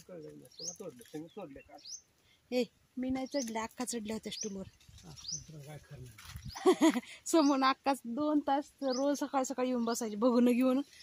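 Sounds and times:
woman laughing: 6.5 - 7.2.

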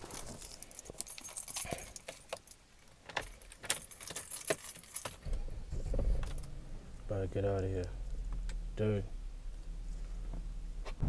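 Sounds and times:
car keys jangling: 0.0 - 8.7
car engine starting: 5.2 - 11.0.

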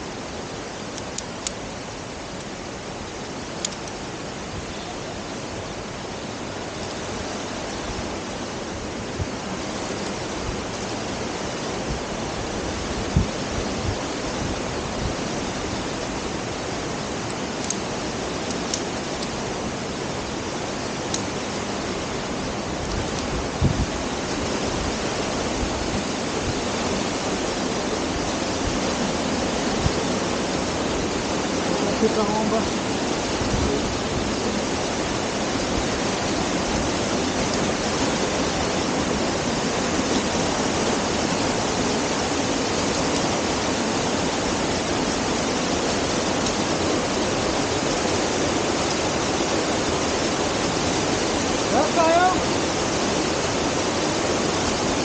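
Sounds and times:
waterfall rushing: 0.0 - 55.0.

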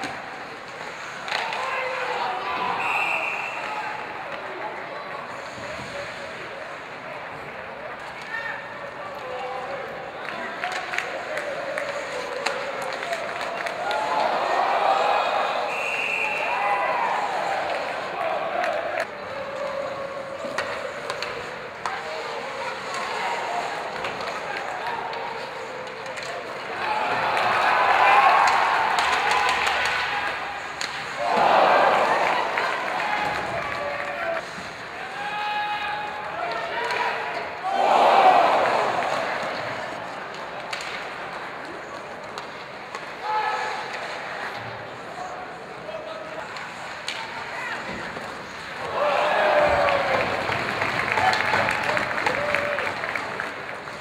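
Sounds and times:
hockey sticks and puck clicking: 0.0 - 7.0, 7.9 - 15.0, 17.2 - 54.0
crowd noise and voices: 0.0 - 54.0
din of spectators: 0.0 - 54.0
spectators shouting: 13.6 - 20.9, 26.7 - 39.9, 47.4 - 52.9.

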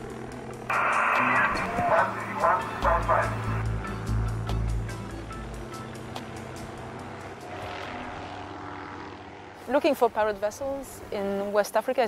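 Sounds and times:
background music: 0.0 - 8.6
low engine drone: 0.0 - 11.2.

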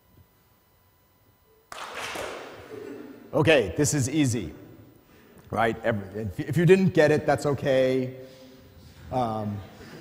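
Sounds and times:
audience clapping: 1.7 - 2.6.

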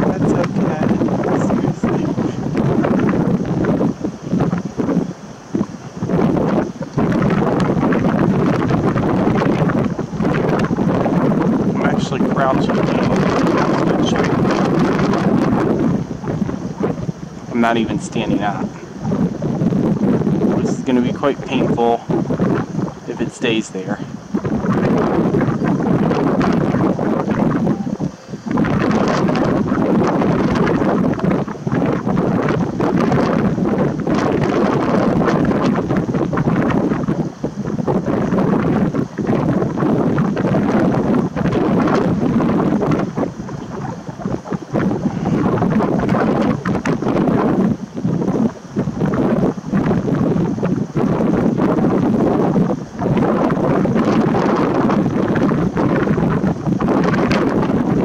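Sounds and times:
strong wind on microphone: 0.0 - 58.0.

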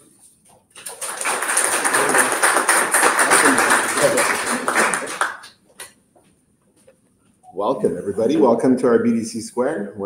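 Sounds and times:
audience applauding: 0.8 - 5.6.

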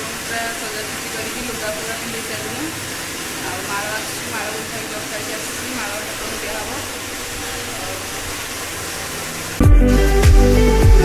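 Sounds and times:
music with strong beat: 9.6 - 11.0.

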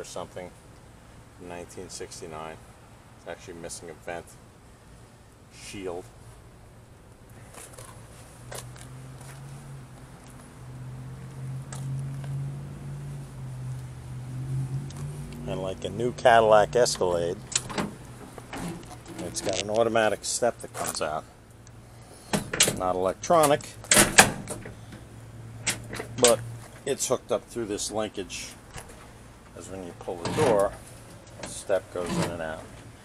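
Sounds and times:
low engine hum: 6.1 - 33.0.

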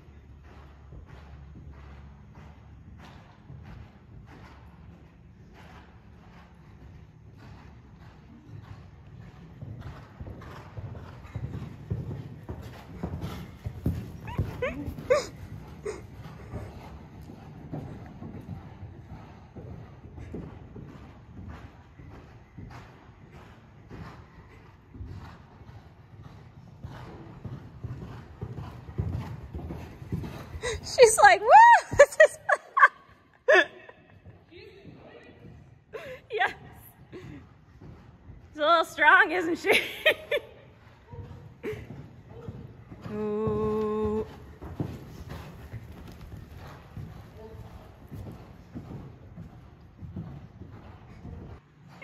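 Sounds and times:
horse hoofbeats on sand: 0.0 - 52.0.

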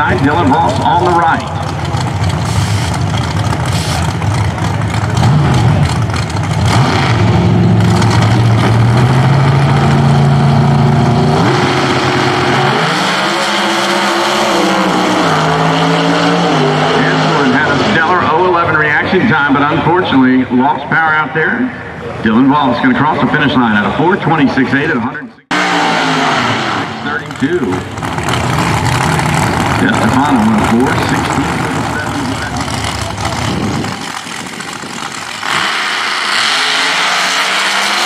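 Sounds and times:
drag car engines revving: 0.0 - 38.0.

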